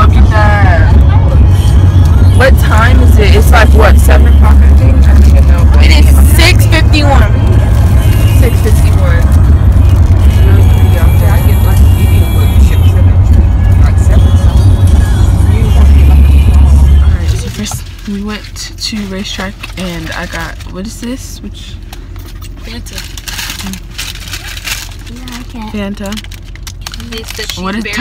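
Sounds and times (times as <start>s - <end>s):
voices: 0.0s - 21.9s, 26.9s - 28.0s
car rumble from inside cabin: 0.0s - 28.0s
music: 0.1s - 17.7s.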